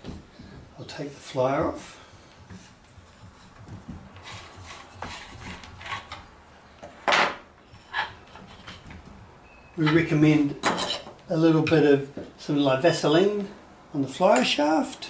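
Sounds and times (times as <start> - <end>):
light wooden knocks and rubbing: 0.0 - 10.0.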